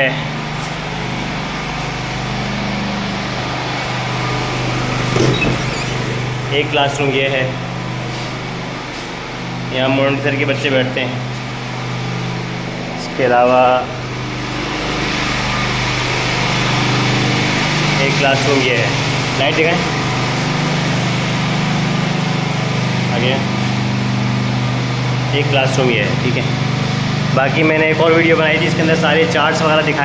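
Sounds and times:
small engine droning: 0.0 - 30.0.

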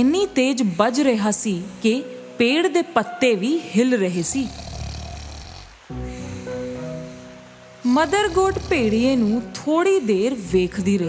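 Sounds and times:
background music with held notes: 0.0 - 11.0
cartoon wolf snoring: 4.2 - 5.8, 7.0 - 9.4.

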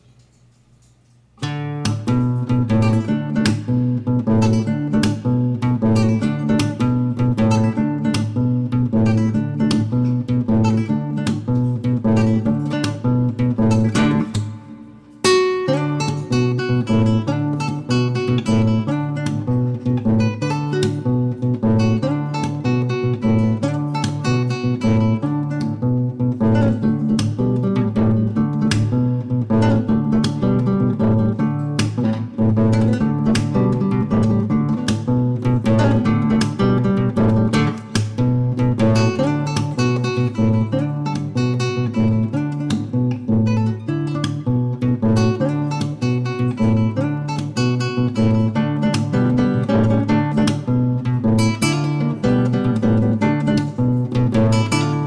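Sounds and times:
fingerstyle classical guitar: 1.4 - 55.0.

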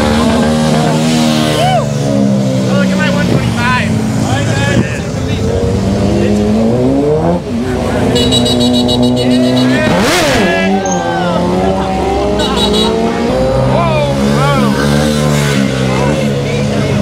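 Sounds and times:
motorcycle engines revving: 0.0 - 17.0
people shouting: 1.5 - 2.0, 9.7 - 14.8.

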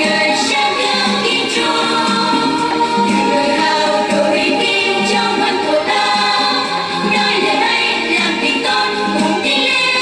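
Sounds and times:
children's choir singing: 0.0 - 10.0
instrumental backing: 0.0 - 10.0.

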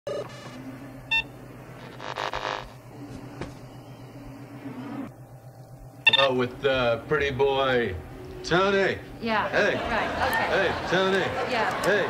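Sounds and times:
electronic beep: 0.1 - 1.3, 6.0 - 6.4
low electrical hum: 0.1 - 12.0
television static hiss: 1.4 - 3.6, 5.4 - 12.0.

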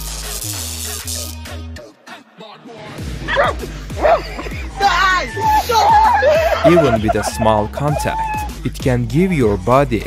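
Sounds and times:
background music with low beat: 3.0 - 10.0
dog barking: 3.2 - 8.4.

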